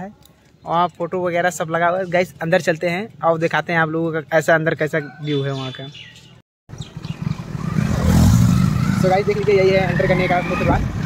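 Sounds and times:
motorcycle engine running: 6.7 - 10.0.

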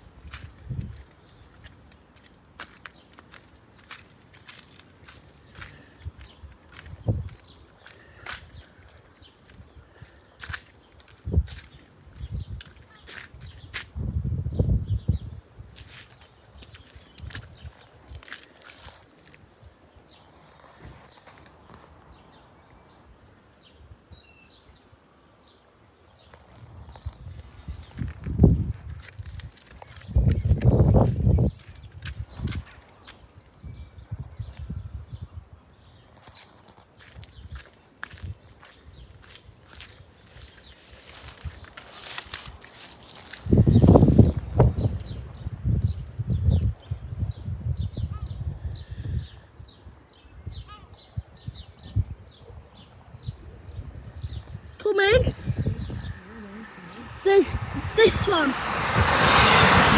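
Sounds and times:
wind rumbling on microphone: 0.0 - 1.8, 5.6 - 19.0, 26.5 - 35.7, 37.2 - 59.9
faint bird chirps: 47.9 - 57.1.

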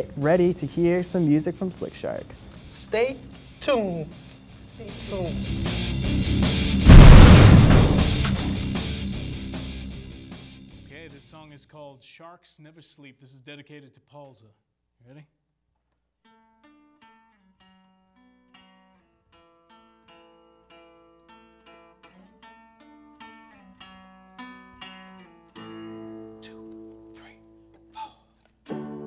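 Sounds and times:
guitar picking single notes: 28.7 - 29.0.

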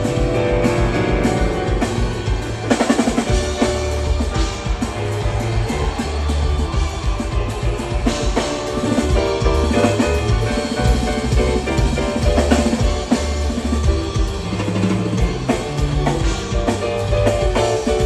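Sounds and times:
rock band playing live: 0.0 - 18.0.

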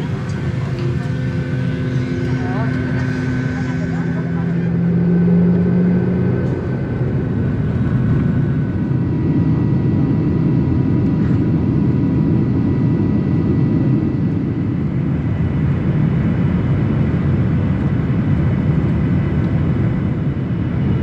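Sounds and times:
jet engine cabin rumble: 0.0 - 21.0.

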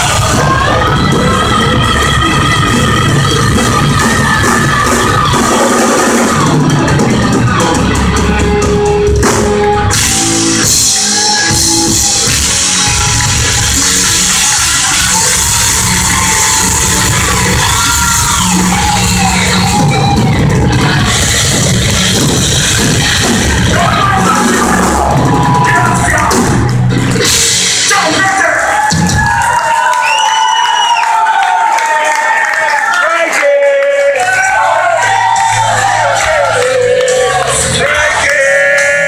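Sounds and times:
heavy metal band playing live: 0.0 - 29.8, 34.2 - 39.0
crowd cheering and yelling: 0.0 - 39.0.

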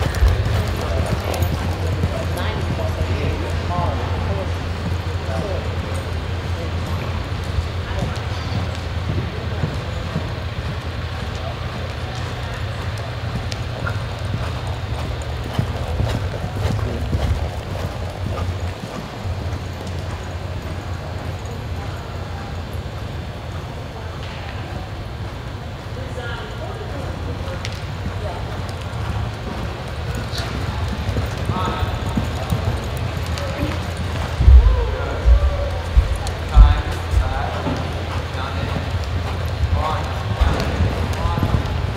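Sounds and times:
horse hoofbeats on dirt: 0.0 - 21.6, 27.4 - 41.9
steady low rumble: 0.0 - 22.5, 28.2 - 41.9
indistinct voices: 26.0 - 41.9
low rumble: 34.4 - 37.6.

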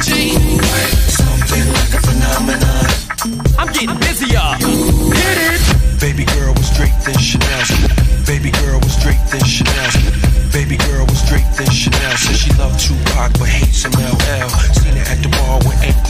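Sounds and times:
rapping over a beat: 0.0 - 16.0.

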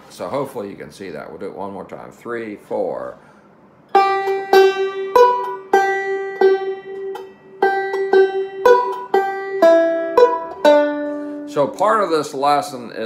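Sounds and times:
banjo picked slowly: 3.9 - 12.5.

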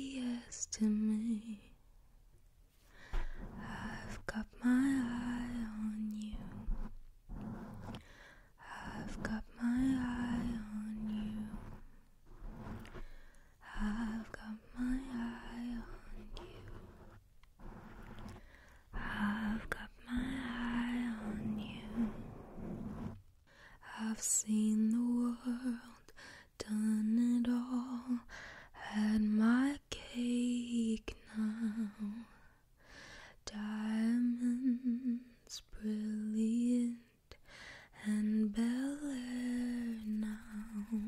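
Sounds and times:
woman singing breathily: 3.0 - 17.0
quick breath: 7.3 - 8.6.

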